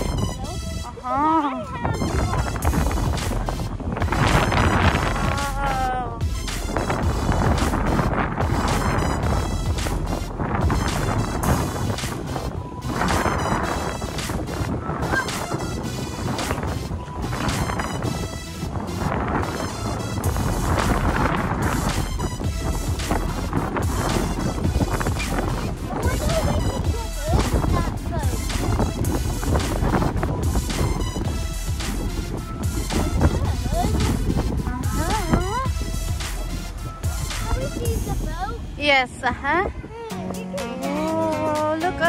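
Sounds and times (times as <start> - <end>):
wind blowing across microphone: 0.0 - 42.0.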